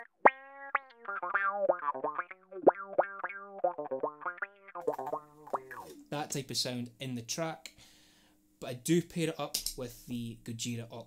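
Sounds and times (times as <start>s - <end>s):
electric bass with wah filter: 0.0s - 6.0s.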